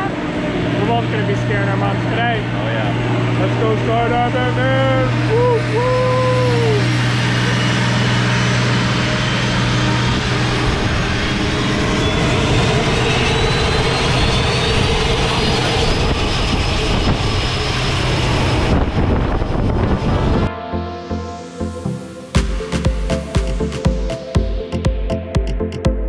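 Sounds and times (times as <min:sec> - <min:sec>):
faint high turbine whine: 0:00.0 - 0:24.5
plane engines droning: 0:00.0 - 0:26.0.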